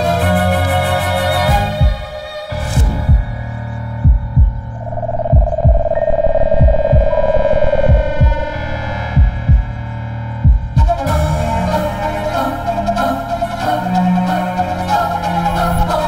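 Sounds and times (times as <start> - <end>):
heartbeat effect of low thumps: 4.0 - 11.0
low drone: 4.2 - 10.5
held higher tone: 4.6 - 9.9.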